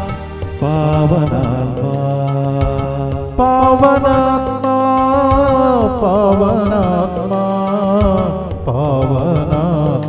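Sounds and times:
light percussion beat: 0:00.0 - 0:10.0
sung devotional chant: 0:00.0 - 0:10.0.

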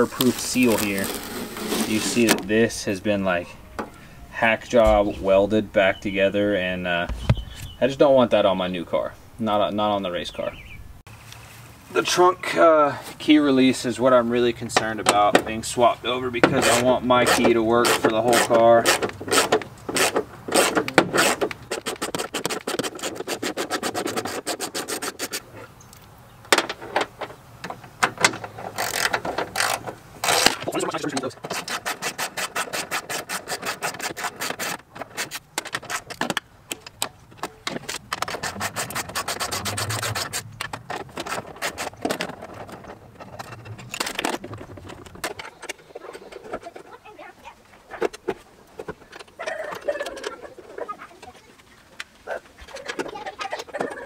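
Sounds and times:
tools scraping on sheet metal: 0:00.0 - 0:02.6, 0:16.4 - 0:25.6, 0:28.2 - 0:47.0.

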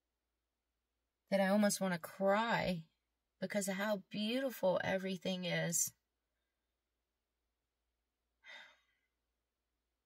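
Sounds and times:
woman sighing softly: 0:08.4 - 0:09.0.

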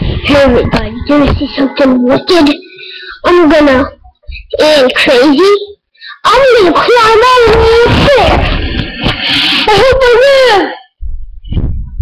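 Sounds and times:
rough noise: 0:00.0 - 0:05.2, 0:06.8 - 0:10.2
high wavering cries: 0:00.0 - 0:08.4.

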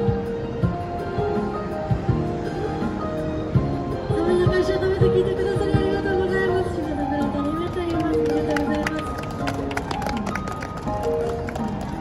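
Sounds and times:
backing music from portable speaker: 0:00.0 - 0:12.0.

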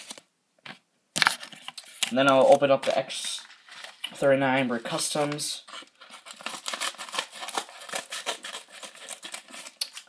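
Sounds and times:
package crinkling and rustling: 0:00.0 - 0:10.0.

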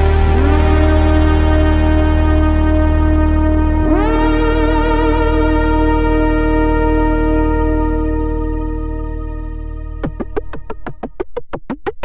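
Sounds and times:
synthesizer chords: 0:00.0 - 0:12.0.

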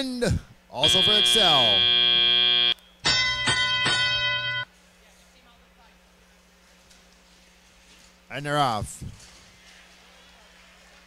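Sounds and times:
bell strikes: 0:03.0 - 0:04.7.

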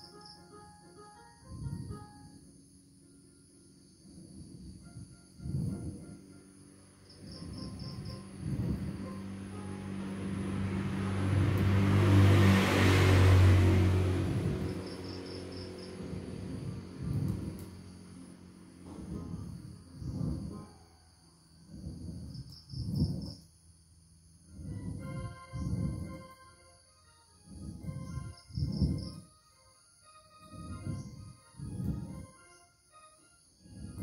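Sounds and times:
faint background music: 0:00.0 - 0:22.1, 0:24.2 - 0:34.0
low rumble with hum: 0:00.0 - 0:32.6, 0:33.4 - 0:34.0
ab wheel rolling on concrete: 0:03.8 - 0:11.8, 0:14.1 - 0:26.6, 0:27.3 - 0:29.3, 0:30.1 - 0:32.6, 0:33.6 - 0:34.0.

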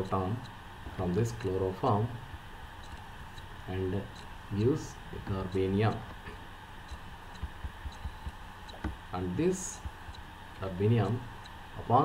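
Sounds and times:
steady electrical hum: 0:00.0 - 0:12.0
stylus tapping on pen tablet: 0:06.9 - 0:09.0, 0:09.8 - 0:10.2.

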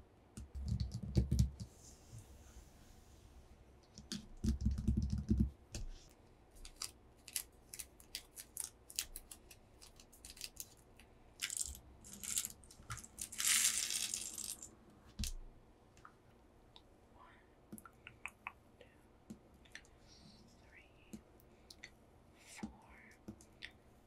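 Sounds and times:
fingertips tapping on paper: 0:04.0 - 0:06.0
glass gems clinking: 0:11.4 - 0:14.7.

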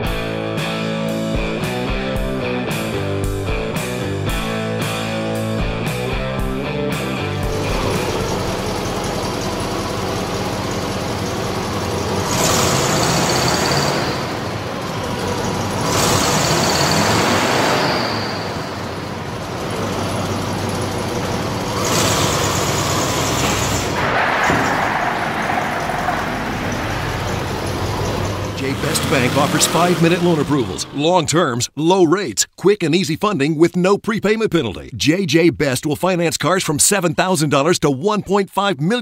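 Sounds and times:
engine idling and revving: 0:00.0 - 0:31.0.

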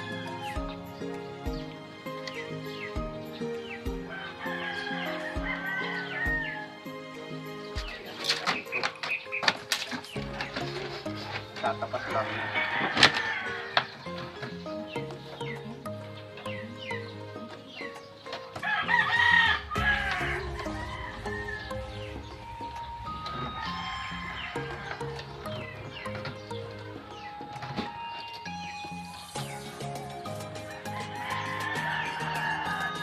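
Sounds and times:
rooster crowing: 0:00.0 - 0:00.6, 0:04.0 - 0:06.9, 0:11.9 - 0:13.9, 0:18.6 - 0:25.8, 0:30.7 - 0:33.0
music of long held notes: 0:13.2 - 0:33.0.

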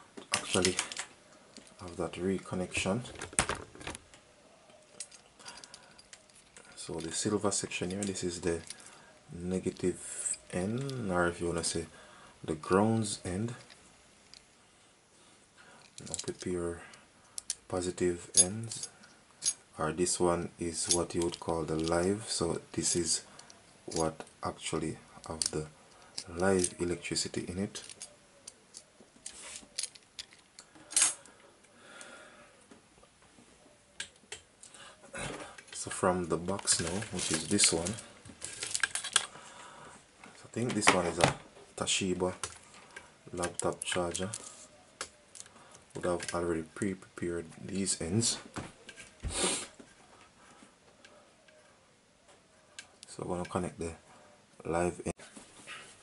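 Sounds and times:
charger wire handled: 0:00.1 - 0:11.7, 0:22.8 - 0:31.4, 0:33.9 - 0:39.4, 0:40.2 - 0:46.6.

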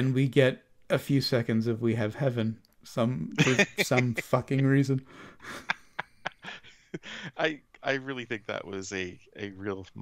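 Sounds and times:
man laughing softly: 0:03.4 - 0:07.6
man breathing: 0:05.0 - 0:07.4.

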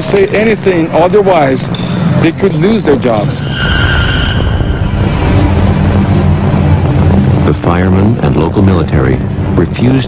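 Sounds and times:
low vehicle rumble: 0:01.7 - 0:10.0
high steady tones: 0:02.7 - 0:08.2.

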